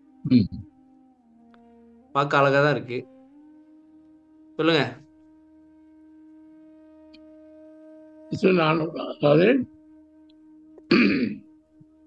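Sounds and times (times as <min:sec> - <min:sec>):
man clearing his throat: 0:10.9 - 0:11.4.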